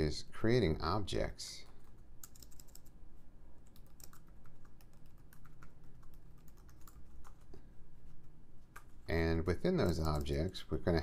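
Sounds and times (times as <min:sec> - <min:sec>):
typing on computer keyboard: 0:01.7 - 0:02.9, 0:03.6 - 0:07.5, 0:09.8 - 0:10.4.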